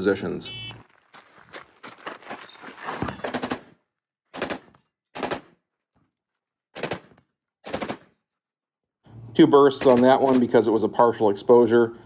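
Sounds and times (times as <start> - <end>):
machine gun firing full auto: 4.4 - 5.6, 6.8 - 8.1, 9.7 - 10.5.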